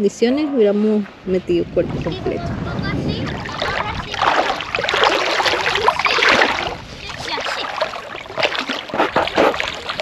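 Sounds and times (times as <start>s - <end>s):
water sloshing around wading legs: 0.6s - 10.0s.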